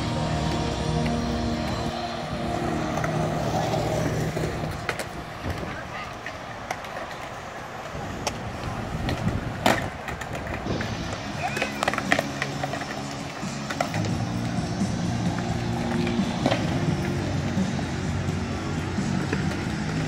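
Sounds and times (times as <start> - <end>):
music: 0.0 - 5.6, 10.7 - 20.0
skateboard wheels rolling on concrete: 0.0 - 20.0
skateboard clacking on ground: 0.1 - 20.0.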